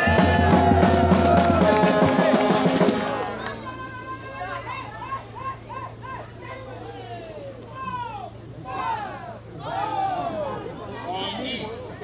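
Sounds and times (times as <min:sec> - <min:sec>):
crowd talking and shouting: 0:00.0 - 0:12.0.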